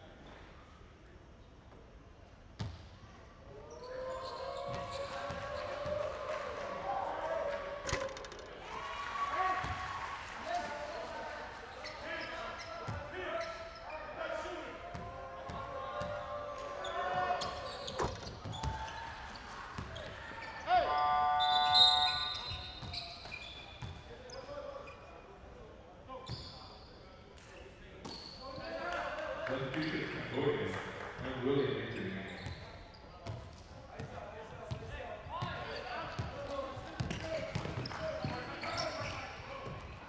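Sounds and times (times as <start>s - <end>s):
players' voices: 3.5s - 23.5s, 27.1s - 40.0s.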